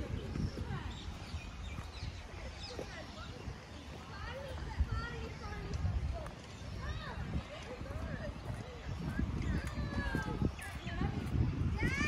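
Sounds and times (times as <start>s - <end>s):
footsteps on path: 0.0s - 12.0s.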